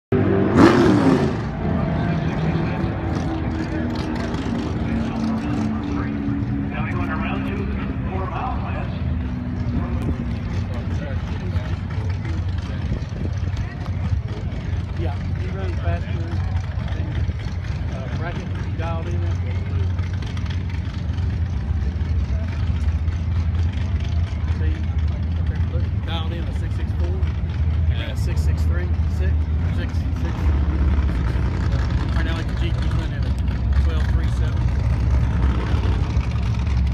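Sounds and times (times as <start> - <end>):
vehicle engines idling: 0.1 - 36.9
loud engine burst: 0.2 - 6.1
people talking: 1.8 - 9.0, 9.7 - 17.2, 17.8 - 19.9, 24.4 - 27.3, 27.9 - 30.5, 32.1 - 34.6.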